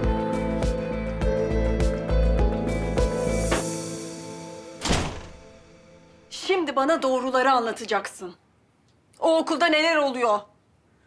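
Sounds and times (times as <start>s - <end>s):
background music: 0.0s - 7.0s
door shutting with a thunk: 4.8s - 5.5s.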